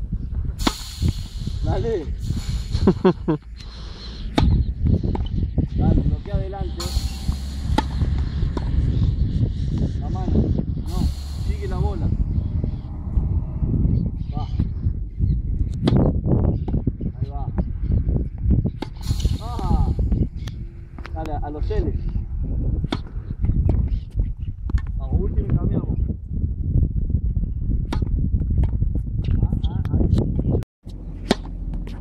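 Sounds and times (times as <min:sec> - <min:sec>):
wind rumble on microphone: 0:00.0 - 0:32.0
tennis balls knocking: 0:04.3 - 0:05.3, 0:07.8 - 0:08.8, 0:31.2 - 0:32.0.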